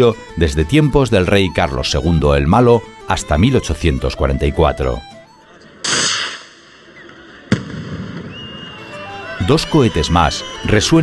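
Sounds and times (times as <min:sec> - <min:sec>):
festival rocket bang: 0:05.8 - 0:06.7, 0:07.5 - 0:08.7
echoing rocket crack: 0:05.8 - 0:08.8.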